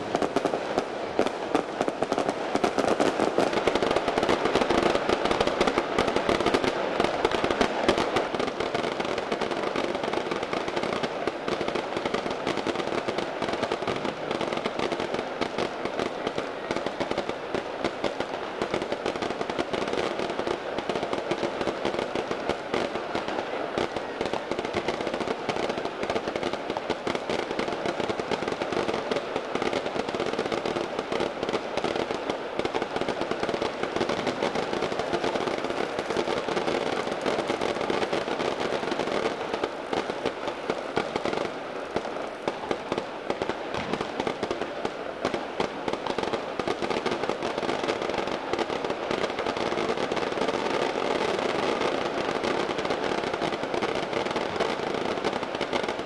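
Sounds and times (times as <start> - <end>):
firecrackers crackling: 0.0 - 56.0.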